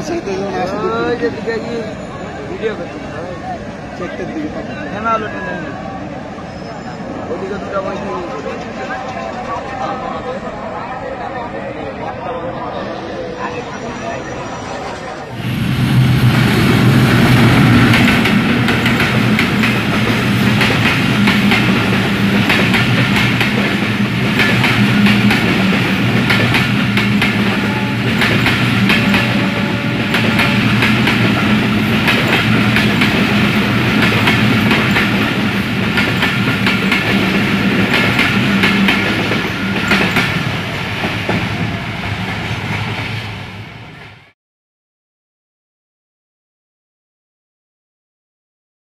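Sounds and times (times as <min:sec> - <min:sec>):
diesel locomotive engine: 0:00.0 - 0:44.3
train wheels clacking over rail joints: 0:17.9 - 0:41.7.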